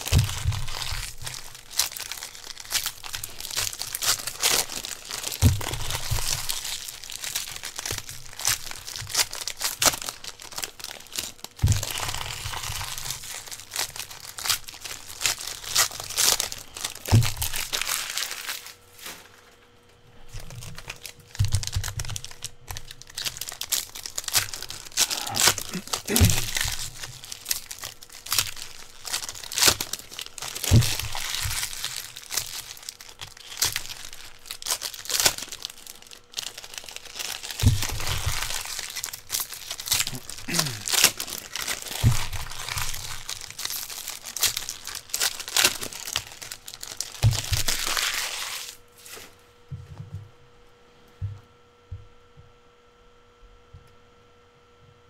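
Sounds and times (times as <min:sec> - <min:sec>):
wrappers crinkling and tearing: 0:00.0 - 0:49.4
faint electrical hum: 0:00.0 - 0:55.0.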